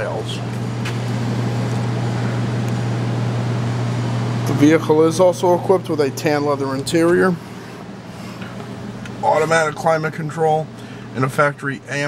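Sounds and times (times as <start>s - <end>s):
machine humming with hiss: 0.0s - 12.0s.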